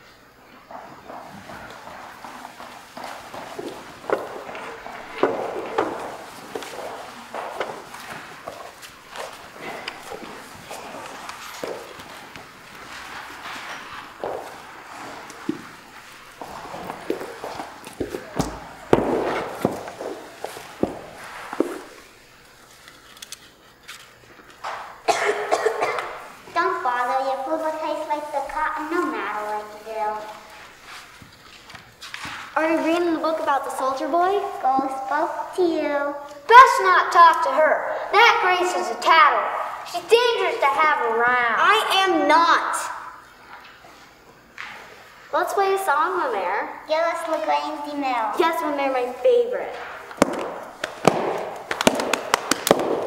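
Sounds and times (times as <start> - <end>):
shuffling: 0.0 - 25.0, 26.0 - 36.9
footsteps on wooden floor: 0.6 - 22.1, 49.7 - 53.0.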